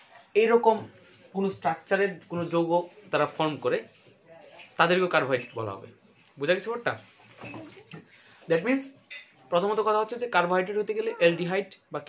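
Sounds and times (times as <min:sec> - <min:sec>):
man speaking: 0:08.5 - 0:12.0.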